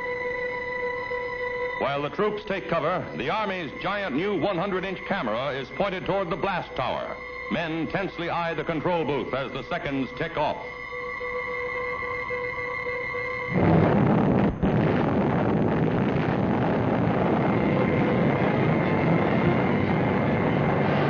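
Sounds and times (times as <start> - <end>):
steady held tone: 0.0 - 21.0
explosion blast rumbling: 13.5 - 21.0.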